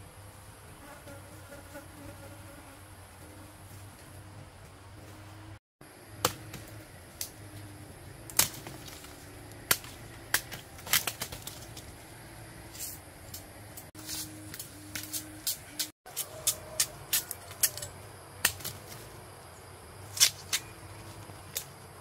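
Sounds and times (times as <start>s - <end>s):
knife striking bamboo: 6.2s - 7.3s, 8.3s - 11.8s, 12.7s - 19.0s, 20.1s - 20.7s.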